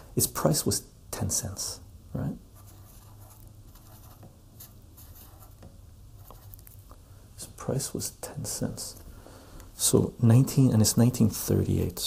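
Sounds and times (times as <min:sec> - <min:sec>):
low steady hum: 0:00.0 - 0:12.0
marker scratching on paper: 0:02.6 - 0:06.7.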